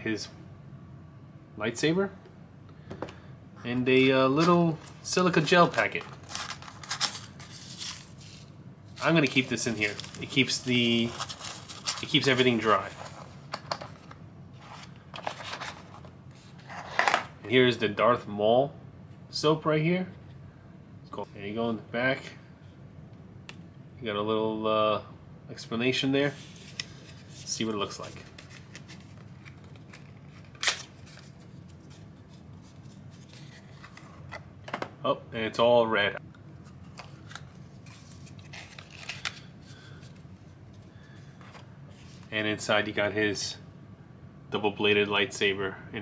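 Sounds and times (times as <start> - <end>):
low steady hum: 0.0 - 46.0
card crackling: 4.3 - 14.1, 26.5 - 34.3, 36.8 - 40.2.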